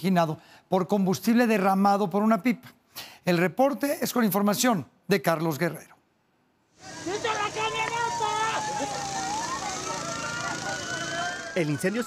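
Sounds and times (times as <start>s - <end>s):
people calling out: 6.8s - 12.0s
siren tone: 6.8s - 12.0s.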